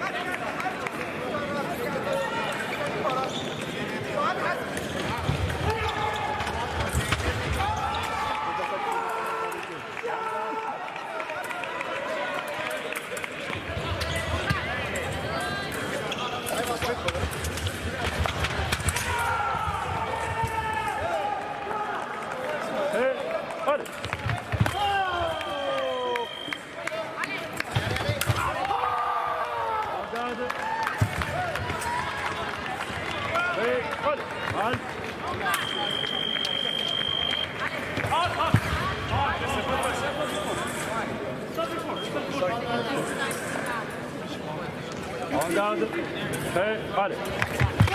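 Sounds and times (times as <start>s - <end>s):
people shouting: 18.9s - 21.8s.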